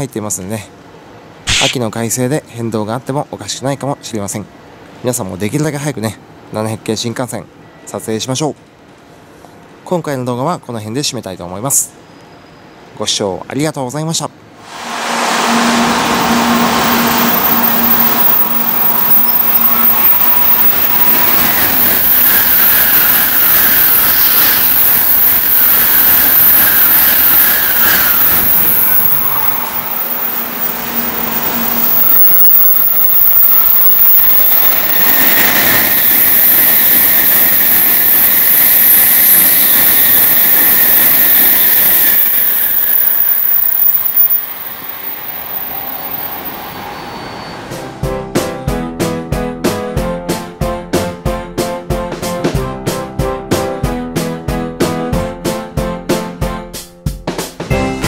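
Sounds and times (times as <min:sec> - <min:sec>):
high-speed trains passing: 0:14.4 - 0:48.2.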